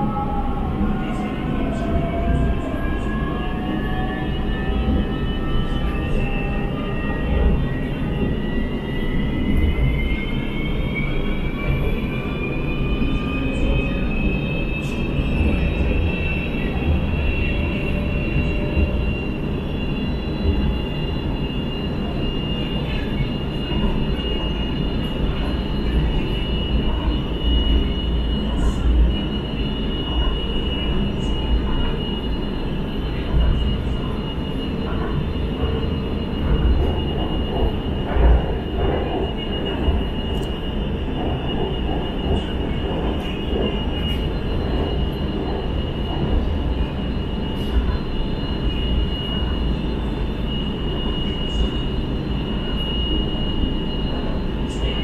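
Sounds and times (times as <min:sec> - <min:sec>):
train traction motor whine: 0:00.0 - 0:55.0.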